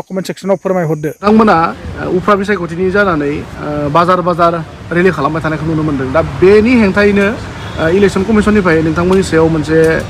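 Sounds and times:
crickets trilling: 0:00.0 - 0:01.6
men speaking: 0:00.0 - 0:10.0
outdoor background noise: 0:00.0 - 0:10.0.

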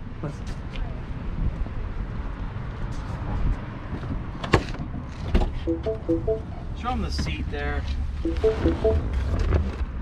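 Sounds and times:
faint music with melodic notes: 0:05.7 - 0:06.5, 0:08.3 - 0:09.1.

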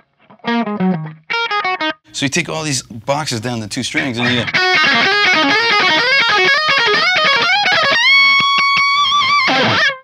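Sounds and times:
electric guitar lead run: 0:04.2 - 0:10.0.

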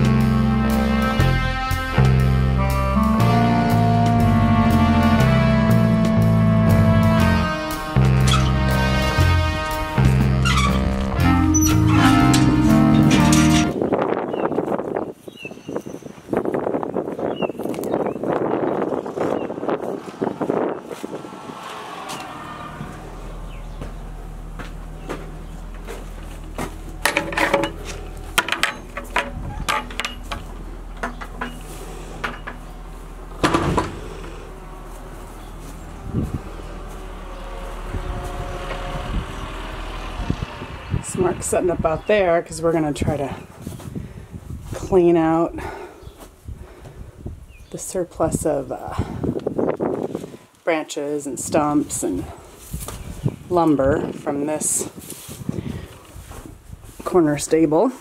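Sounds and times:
music: 0:00.0 - 0:13.8
engine humming: 0:00.0 - 0:14.1, 0:17.7 - 0:50.4
wooden knocks and thuds: 0:23.7 - 0:31.6, 0:33.4 - 0:34.1
rustling noise: 0:43.2 - 0:45.1, 0:51.8 - 0:58.0.

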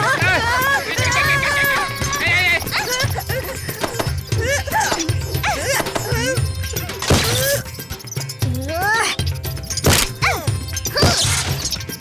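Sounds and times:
background music with pulsing beat: 0:00.0 - 0:12.0
cartoon rats squeaking: 0:00.4 - 0:12.0.

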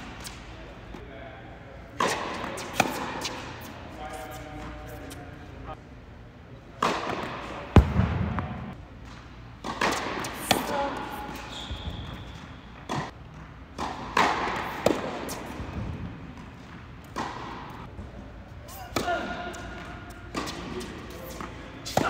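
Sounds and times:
tennis ball struck by rackets: 0:02.0 - 0:03.5, 0:09.6 - 0:11.4, 0:12.8 - 0:16.1
ball bouncing on hard court: 0:06.8 - 0:11.1, 0:11.7 - 0:17.9.

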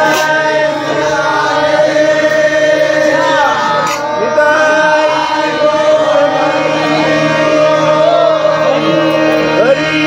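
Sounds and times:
group of voices chanting: 0:00.0 - 0:10.0
harmonium playing reed chords: 0:00.0 - 0:10.0.

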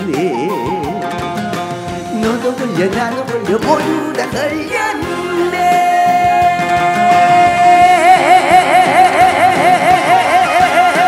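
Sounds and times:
backing band: 0:00.0 - 0:11.0
man singing with vibrato: 0:00.0 - 0:11.0.

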